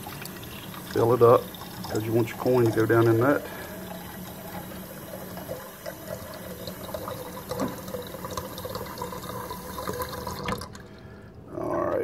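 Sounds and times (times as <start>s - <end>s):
tap water filling a glass: 0.0s - 10.9s.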